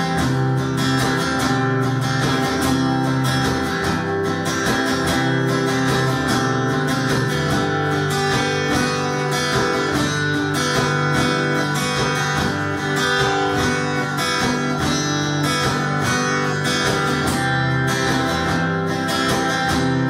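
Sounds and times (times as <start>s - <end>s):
acoustic guitar playing: 0.0s - 20.0s.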